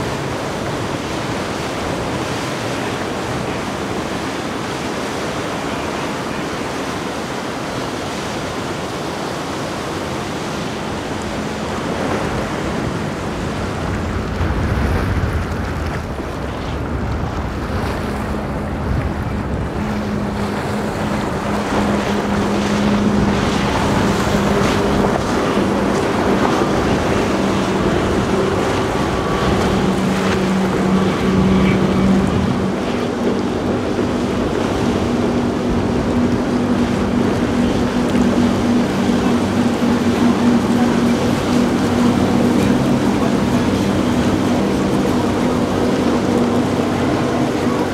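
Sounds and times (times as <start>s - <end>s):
outboard motors droning: 0.0s - 47.9s
wind on microphone: 0.0s - 47.9s.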